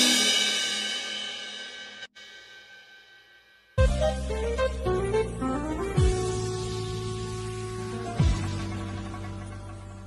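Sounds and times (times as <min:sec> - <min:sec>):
cymbal ringing: 0:00.0 - 0:03.9
keyboard chord ringing out: 0:03.8 - 0:08.7.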